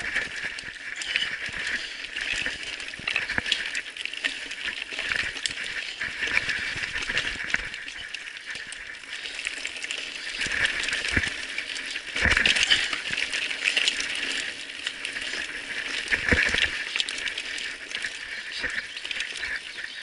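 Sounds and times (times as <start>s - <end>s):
bike clattering over stones: 0.0s - 18.0s.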